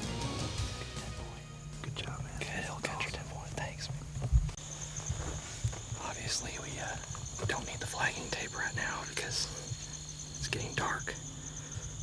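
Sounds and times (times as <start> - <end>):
man whispering: 1.8 - 4.0, 6.0 - 11.3.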